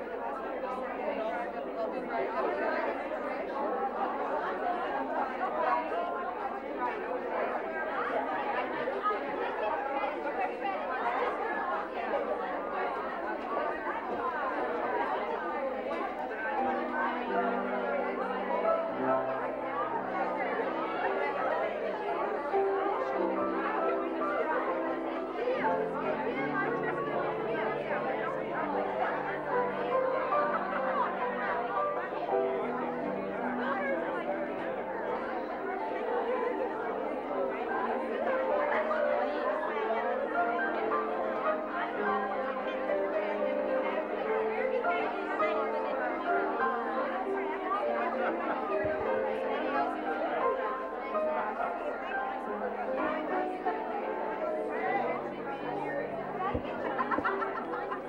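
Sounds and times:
many women talking: 0.0 - 58.0.

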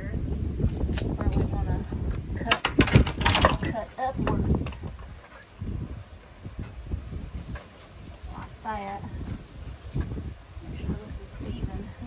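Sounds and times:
wind rumble on microphone: 0.0 - 12.0
wooden boards knocking together: 2.4 - 4.8.

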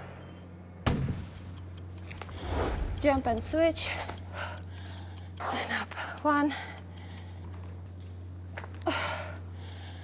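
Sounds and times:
steady low hum: 0.0 - 10.0
light scattered ticks: 1.4 - 8.7.

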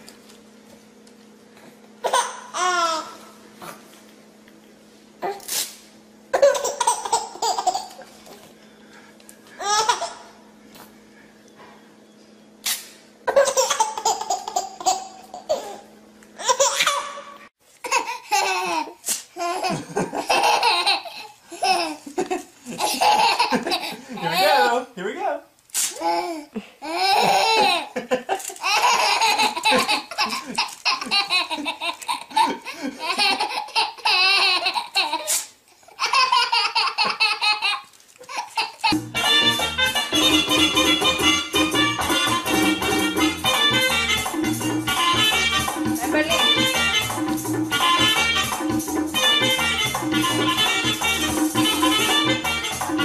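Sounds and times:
baby laughing: 2.0 - 3.2, 6.4 - 8.1, 9.6 - 10.3, 13.3 - 15.8, 16.4 - 24.7, 26.0 - 39.0.

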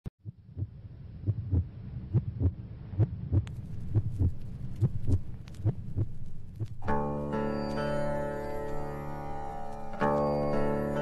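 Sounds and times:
steady low drone: 0.4 - 11.0.

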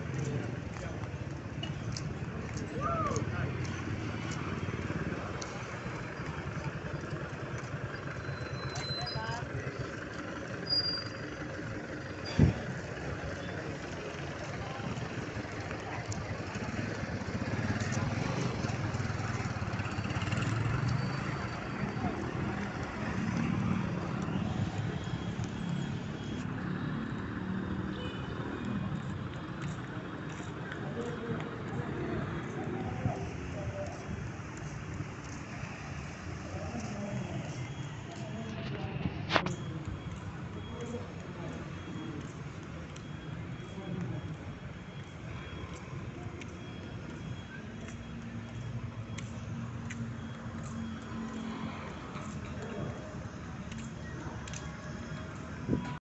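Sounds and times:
traffic noise: 0.0 - 56.0.

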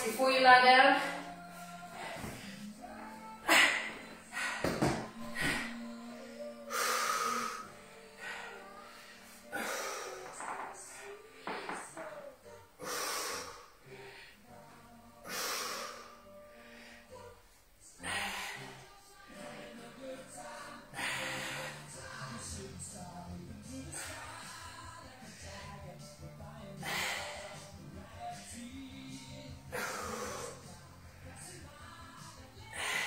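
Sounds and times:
background music: 0.0 - 33.0.

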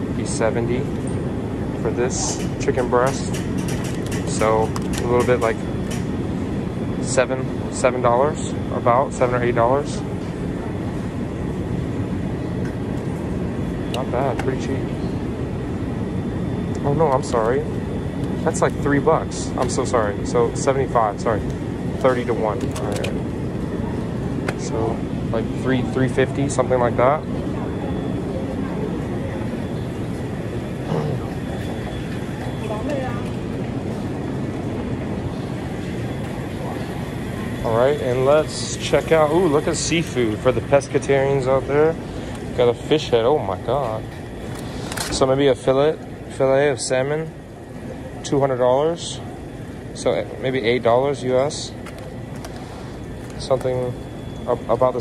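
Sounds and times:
faint shoppers' voices: 0.0 - 6.0, 13.8 - 55.0
low rumble of store background: 0.0 - 55.0
low supermarket hum: 0.0 - 55.0
faint high steady tone: 35.3 - 44.1, 53.3 - 55.0.

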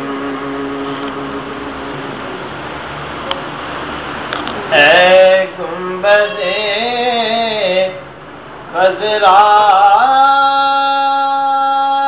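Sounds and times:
man singing long note: 4.7 - 8.0, 8.7 - 12.0.

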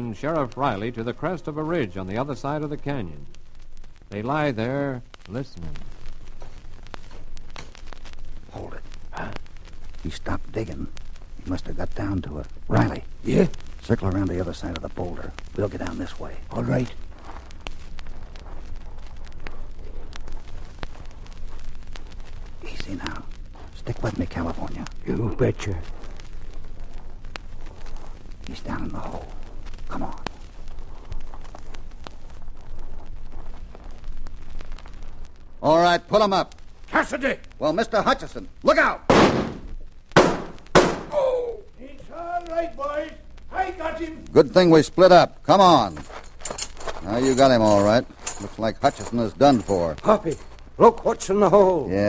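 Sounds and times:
low recording hum: 0.0 - 52.0
footsteps on loose stones: 15.5 - 34.5, 45.6 - 50.8
gunshots with ringing tail: 39.1 - 39.6.

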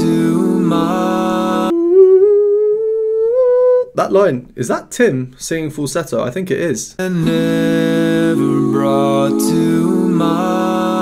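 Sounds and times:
man singing falsetto note: 1.6 - 4.0.

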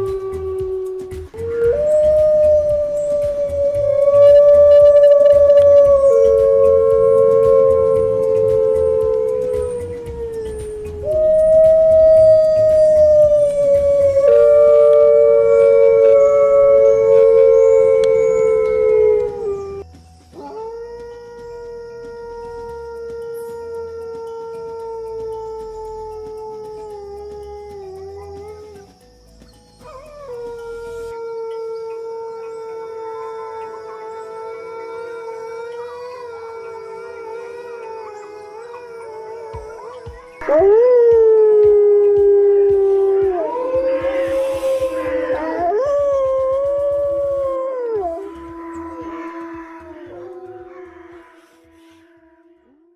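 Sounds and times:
wolves howling: 0.0 - 29.0, 29.8 - 51.8.

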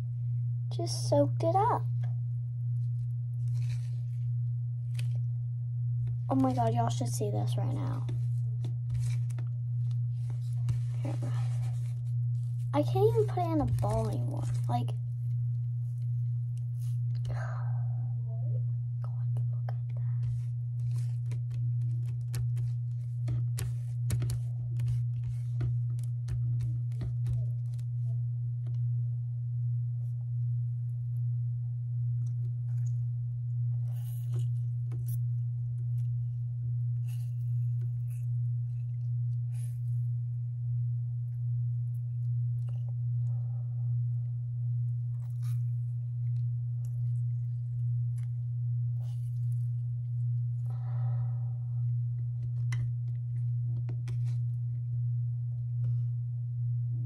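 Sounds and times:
low hum: 0.0 - 57.0.

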